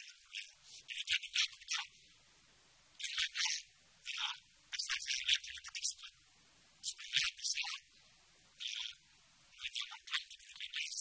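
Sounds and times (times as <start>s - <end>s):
man speaking tinny voice: 6.8s - 7.9s, 8.6s - 9.0s.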